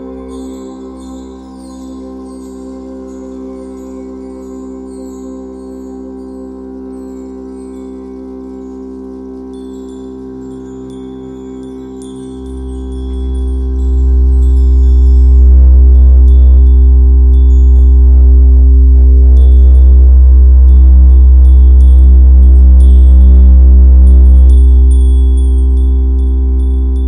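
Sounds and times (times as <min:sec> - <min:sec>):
ambient drone music: 0:00.0 - 0:27.0
tinkling chime notes: 0:00.0 - 0:27.0
deep bass drone: 0:09.4 - 0:27.0.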